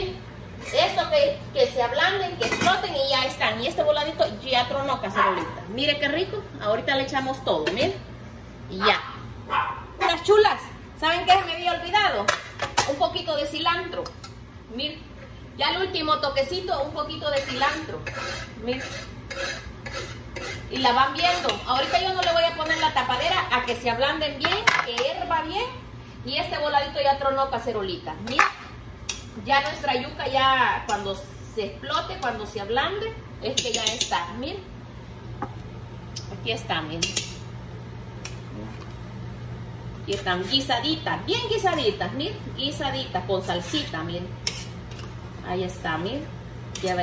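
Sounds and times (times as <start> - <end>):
steady low hum: 0.0 - 47.0
spoon stirring in metal pot: 17.2 - 23.4, 33.5 - 34.2, 43.5 - 45.1
knife scraping on wooden cutting board: 17.3 - 23.0
spoon clinking against pot: 33.6 - 34.2.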